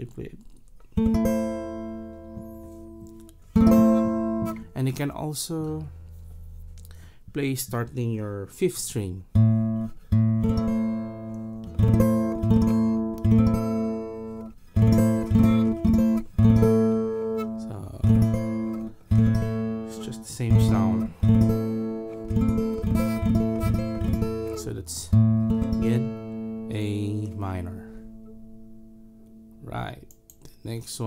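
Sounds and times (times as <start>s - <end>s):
acoustic guitar strumming: 1.0s - 7.1s, 9.3s - 30.3s.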